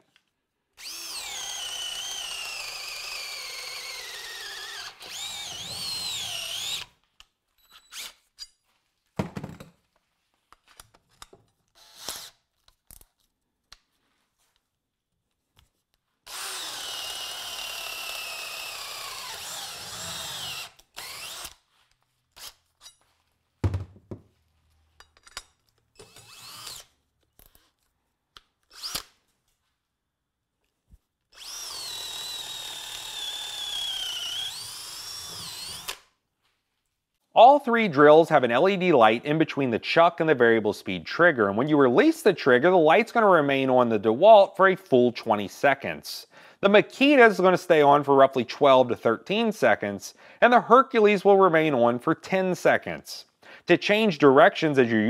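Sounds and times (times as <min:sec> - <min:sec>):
cordless drill boring into wood: 0:00.8 - 0:07.0, 0:07.7 - 0:08.2, 0:11.8 - 0:12.4, 0:16.2 - 0:21.7, 0:22.4 - 0:22.6, 0:26.0 - 0:26.9, 0:28.7 - 0:29.1, 0:31.3 - 0:36.1.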